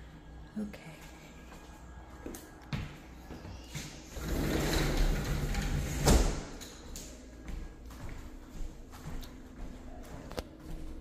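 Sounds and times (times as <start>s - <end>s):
sliding glass door rolling: 4.1s - 6.6s.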